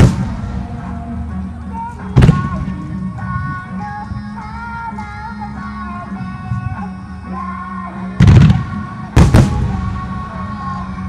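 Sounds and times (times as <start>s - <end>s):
pop song with vocals: 0.4s - 11.0s.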